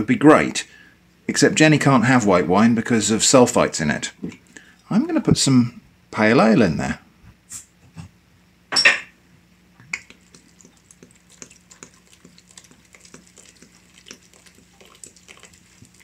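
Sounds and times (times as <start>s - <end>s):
beer pouring and fizzing: 9.9s - 16.0s.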